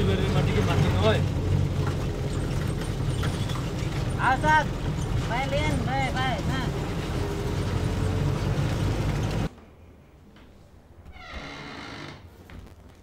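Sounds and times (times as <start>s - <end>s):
vehicle running rumble: 0.0s - 9.5s
wooden door creaking open: 11.0s - 12.7s.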